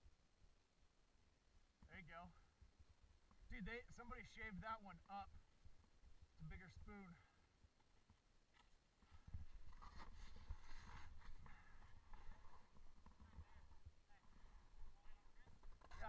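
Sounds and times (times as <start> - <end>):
snowboard sliding over snow: 9.7 - 12.8.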